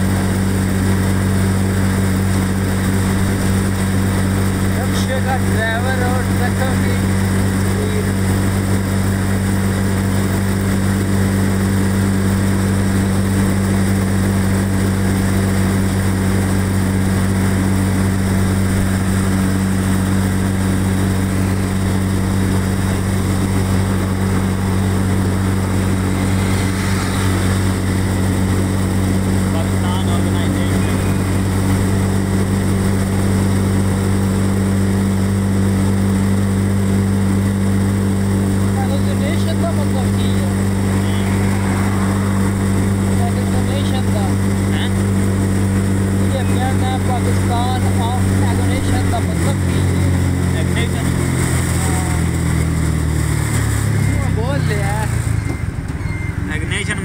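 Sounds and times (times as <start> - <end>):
low vehicle engine drone: 0.0 - 57.0.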